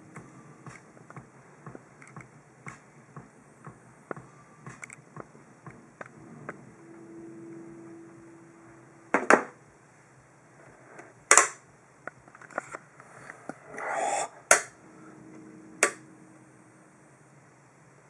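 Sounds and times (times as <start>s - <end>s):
brief scrape: 13.0s - 14.7s.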